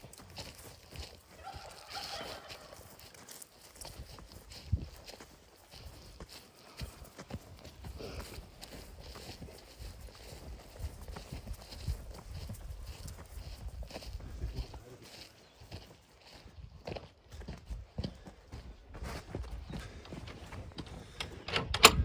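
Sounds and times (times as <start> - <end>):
footsteps on grass: 0.0 - 21.2.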